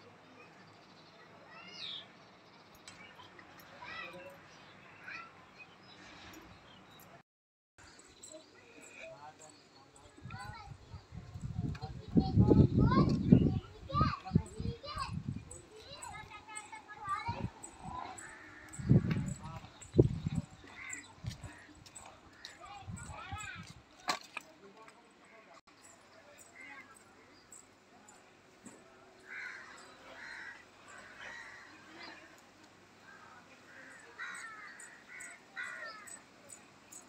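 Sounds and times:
children calling and chattering: 0.0s - 6.4s, 7.8s - 37.0s.

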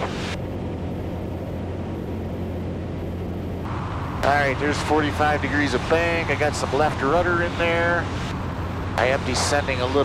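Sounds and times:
aircraft engine and propeller droning: 0.0s - 10.0s.

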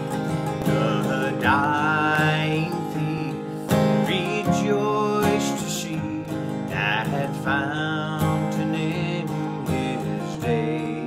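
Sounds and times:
acoustic guitar strumming: 0.0s - 11.0s
man singing: 0.0s - 11.0s.

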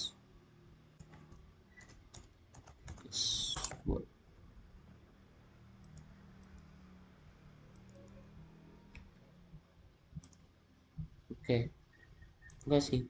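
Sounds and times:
low room hum: 0.0s - 13.0s
computer mouse clicks: 1.0s - 3.8s, 5.8s - 6.7s, 7.7s - 8.2s, 10.2s - 10.4s, 12.0s - 12.7s.

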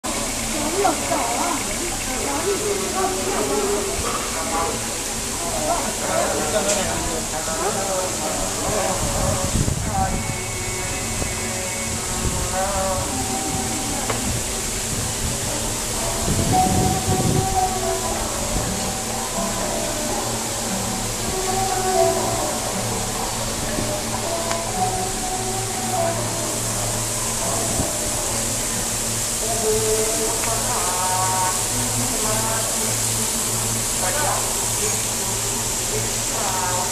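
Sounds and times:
background music: 0.1s - 36.9s
faint hiss: 0.1s - 36.9s
people talking indistinctly: 0.2s - 36.9s.

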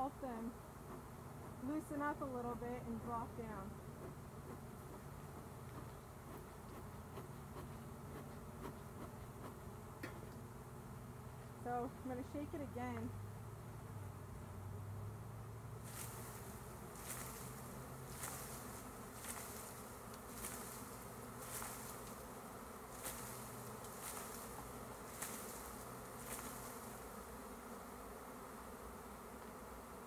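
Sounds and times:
honey bees buzzing: 0.0s - 30.0s
leaves swishing: 15.8s - 22.2s, 22.9s - 27.0s.

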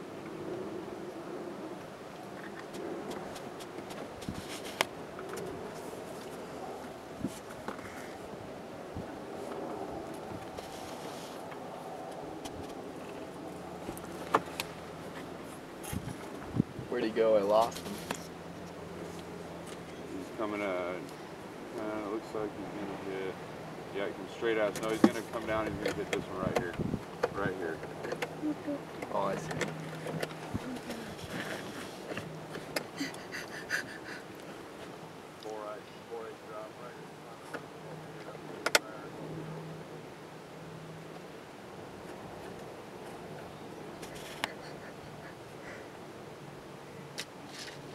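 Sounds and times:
engine humming steadily: 0.0s - 47.9s.

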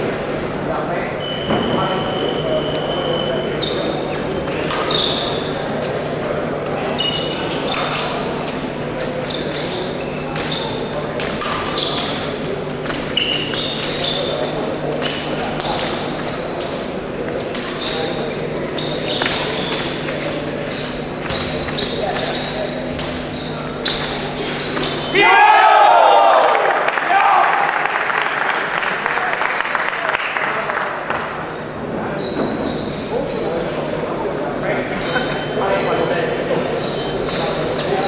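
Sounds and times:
chatter and hum of sports hall: 0.0s - 38.0s.

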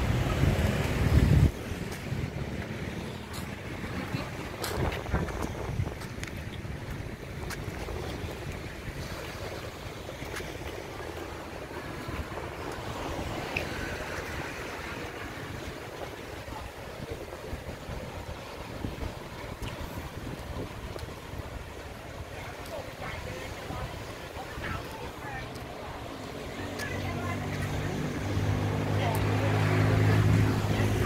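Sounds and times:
distant road traffic: 0.0s - 5.4s, 9.7s - 16.8s, 21.1s - 31.0s
small waves washing on sand: 0.0s - 31.0s
wind rumbling on microphone: 0.0s - 31.0s.

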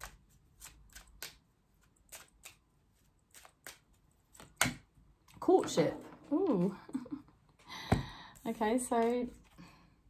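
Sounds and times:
cards shuffled by hand: 0.0s - 4.7s.

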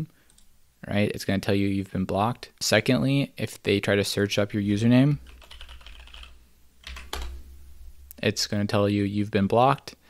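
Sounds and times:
low steady hum: 3.3s - 10.0s
computer keyboard typing: 5.2s - 7.4s.

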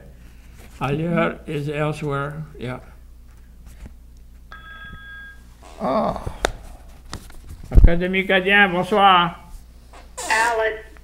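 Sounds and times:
electronic telephone ring: 4.5s - 5.5s.

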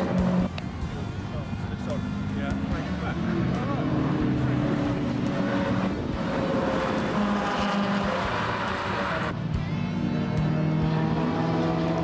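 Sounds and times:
racing car engines: 0.0s - 12.0s.

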